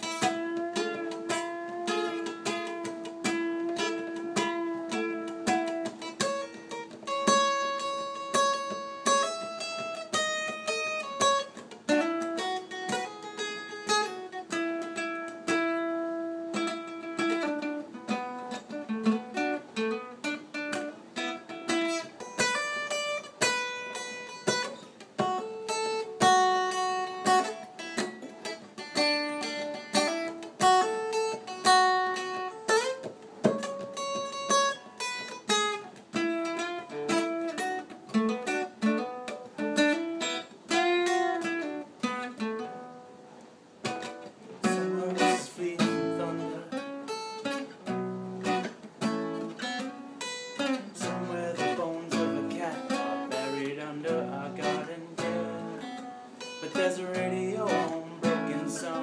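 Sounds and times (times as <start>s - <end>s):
fingerpicked acoustic guitar: 0.0s - 59.0s.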